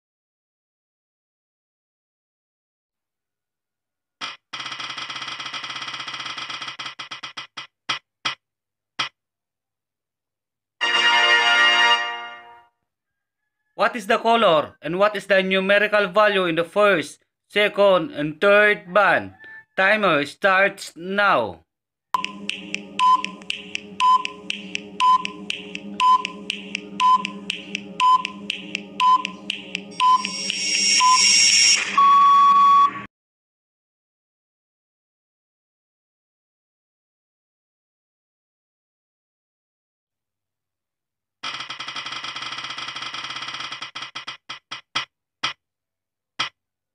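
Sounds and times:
spinning wheel ticking: 4.6s - 7.7s, 41.5s - 45.1s
timer ticks and short beeps: 22.2s - 25.4s, 26.0s - 31.2s
steady drone: 22.2s - 32.0s
long buzzer tone: 29.9s - 33.0s.

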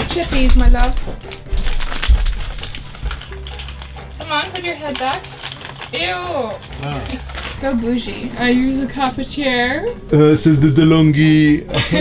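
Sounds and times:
plastic snack bag crinkling: 0.1s - 9.0s
chocolate chips pouring: 1.4s - 7.6s.

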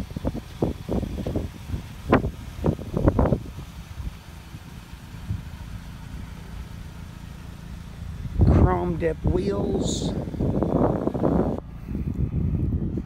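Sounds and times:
car engine idling: 0.0s - 13.0s.

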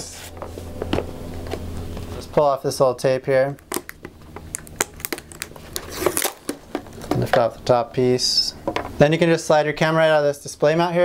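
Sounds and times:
tape peeling off cardboard: 3.6s - 6.6s.

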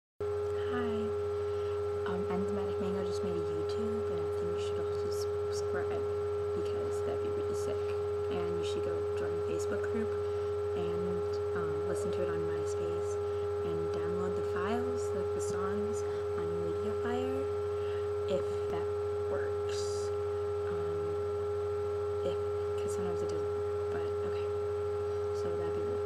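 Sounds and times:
low hum: 0.2s - 26.0s
steady electronic tone: 0.2s - 26.0s.

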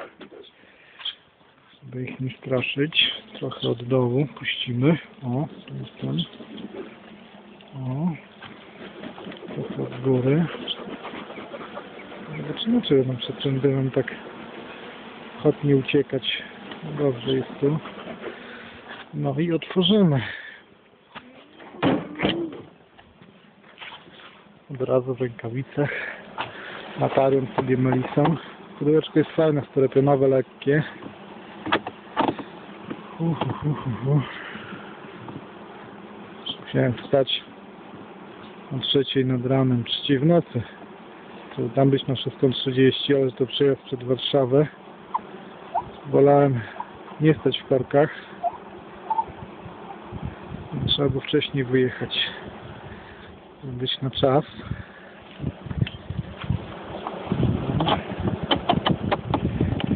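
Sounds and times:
honeybees buzzing: 0.0s - 59.9s
knocks and scrapes of hive: 2.1s - 20.0s, 25.9s - 38.9s, 54.4s - 59.9s
sharp clicks and knocks: 57.8s - 59.9s.

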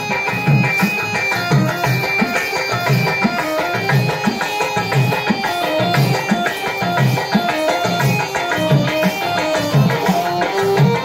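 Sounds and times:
hand drum beating: 0.0s - 11.0s
held reed-keyboard tones: 0.0s - 11.0s.

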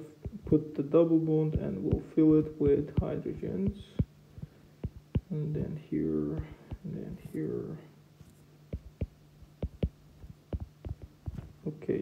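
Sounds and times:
stylus tapping on tablet screen: 0.0s - 0.6s, 1.4s - 5.4s, 6.2s - 7.5s, 8.2s - 11.6s
steady low hum: 0.0s - 12.0s.

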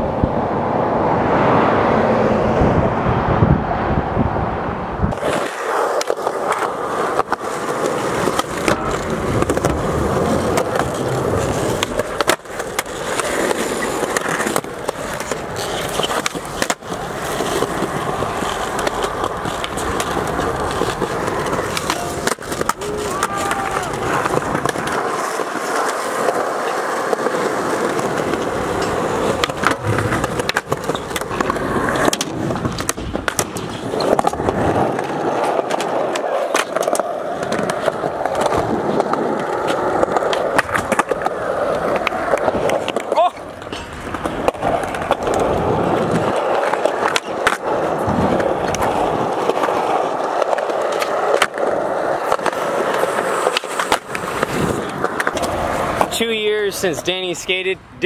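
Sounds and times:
skateboard wheels rolling on concrete: 0.0s - 58.0s
skateboard clacks: 5.1s - 57.8s.

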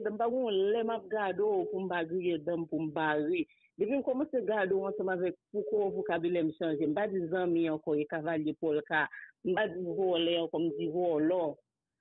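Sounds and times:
person talking: 0.0s - 11.6s.

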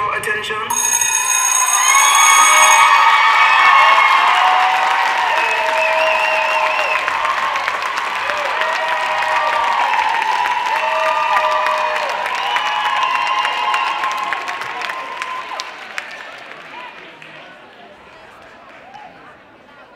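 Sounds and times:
audience cheering and shouting: 1.7s - 16.9s
audience applauding: 1.8s - 19.3s.

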